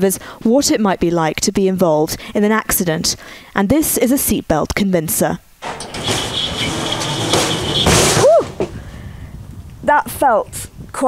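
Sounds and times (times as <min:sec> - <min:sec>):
seat sled rolling on track: 0:05.6 - 0:09.0
sled stopping with sudden jolt: 0:05.6 - 0:09.0.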